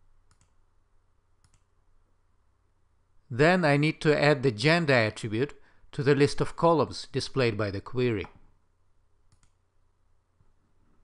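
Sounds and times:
computer mouse clicks: 0.2 - 0.6, 1.4 - 1.7, 9.3 - 9.6.

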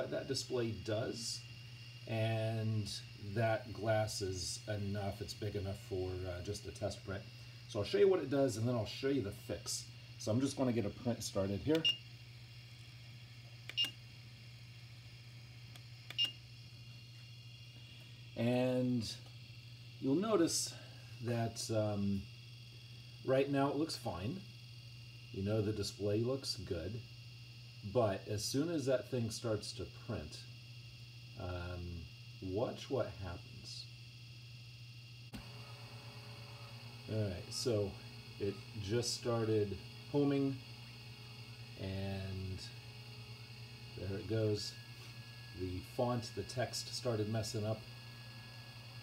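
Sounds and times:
steady low hum: 0.0 - 49.0
stepper motor whine: 0.0 - 49.0
sharp click: 13.6 - 14.0, 15.7 - 16.4.

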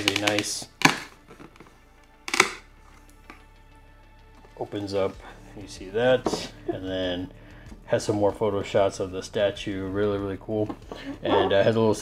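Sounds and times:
cardboard flap snapping open: 0.0 - 1.7, 2.3 - 2.6
faint background music: 0.0 - 12.0.

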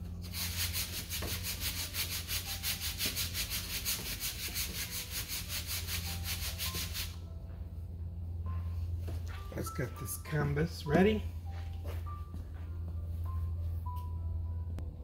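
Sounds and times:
steady low hum: 0.0 - 15.0
rapid rubbing strokes: 0.2 - 7.2.

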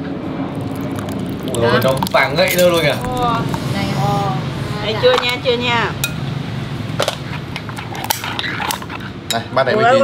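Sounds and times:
crab shell clicking and clinking: 0.6 - 3.6.

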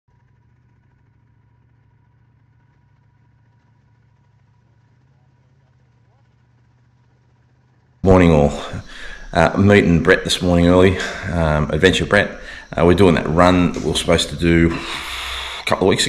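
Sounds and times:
faint low hum: 0.1 - 16.0.

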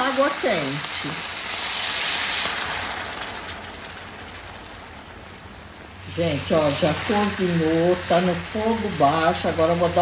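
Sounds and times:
liquid sizzling and bubbling: 0.0 - 10.0
water pouring into a hot pan: 0.0 - 10.0.

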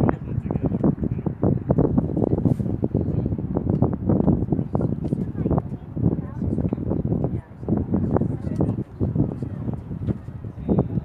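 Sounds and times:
indistinct chatter: 0.0 - 11.0
wind buffeting microphone: 0.0 - 11.0.

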